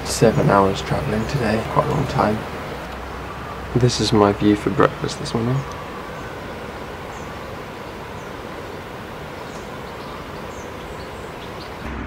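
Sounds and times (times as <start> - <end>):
birds chirping faintly: 0.0 - 11.9
outdoor ambient hiss: 0.0 - 12.0.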